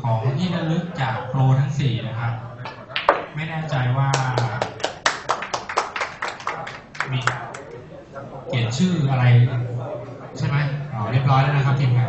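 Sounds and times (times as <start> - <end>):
spectators clapping: 4.1 - 7.7.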